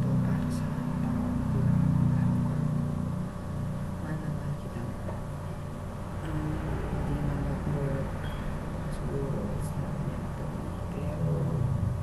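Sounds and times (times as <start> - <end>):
steady low hum: 0.0 - 12.0.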